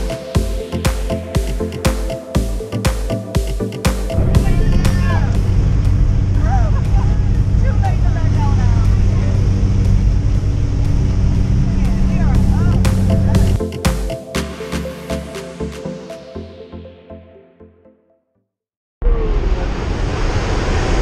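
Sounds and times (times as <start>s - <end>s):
plane engine drone in cabin: 5.3s - 13.6s.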